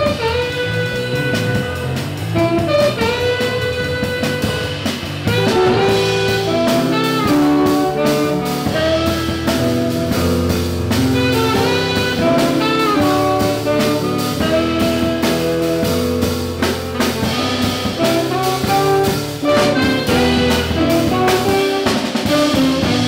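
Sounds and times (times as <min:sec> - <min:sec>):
electric guitar: 0:00.0 - 0:15.9, 0:17.0 - 0:23.0
drum kit: 0:00.0 - 0:23.0
saxophone melody: 0:00.0 - 0:23.0.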